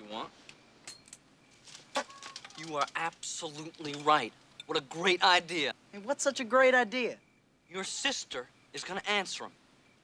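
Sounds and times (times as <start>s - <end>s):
small metal objects clinking: 0.9s - 4.8s.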